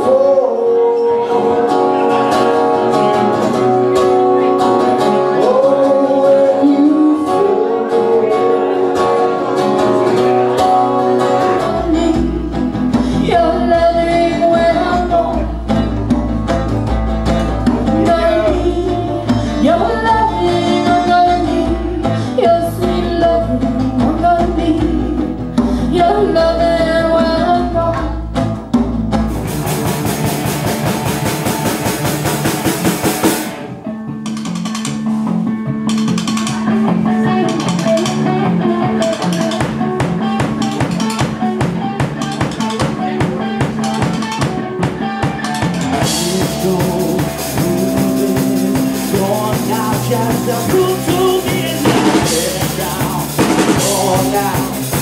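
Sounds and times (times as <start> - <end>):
live band music: 0.0 - 55.0
drum kit: 8.4 - 55.0.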